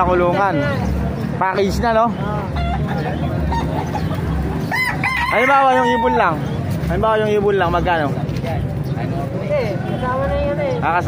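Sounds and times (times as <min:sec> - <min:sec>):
rooster crowing: 0:04.7 - 0:06.4.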